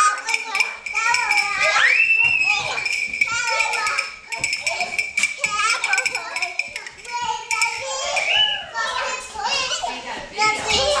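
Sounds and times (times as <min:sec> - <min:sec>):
children squealing and shouting: 0:00.0 - 0:11.0.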